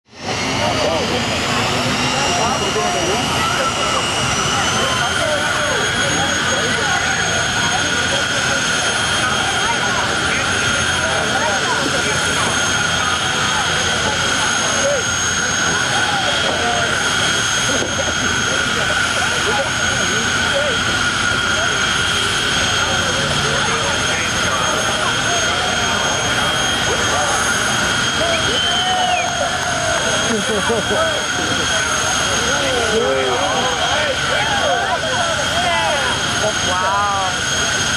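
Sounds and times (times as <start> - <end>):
crowd chatter: 0.1 - 37.9
turbine engine whine: 0.1 - 37.9.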